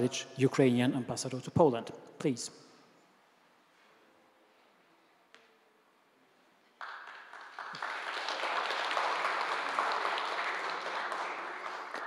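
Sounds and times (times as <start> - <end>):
audience applauding: 6.8 - 12.0.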